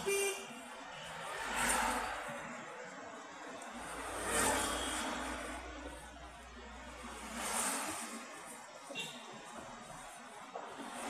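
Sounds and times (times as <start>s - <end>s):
road and traffic noise: 0.0s - 11.0s.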